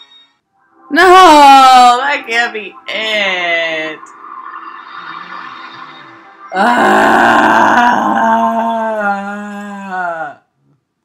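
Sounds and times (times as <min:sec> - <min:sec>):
woman groaning: 0:06.6 - 0:10.4.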